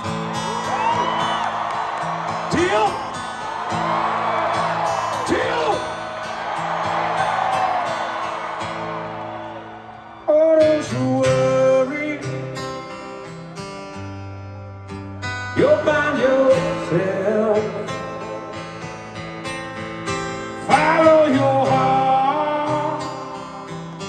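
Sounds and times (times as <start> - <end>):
acoustic guitar strumming: 0.0 - 24.0
person singing: 20.7 - 23.3.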